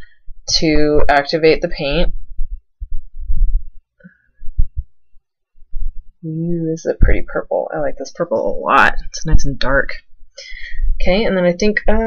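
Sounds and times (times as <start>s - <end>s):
muffled handling thumps: 2.2s - 3.8s, 4.4s - 5.0s.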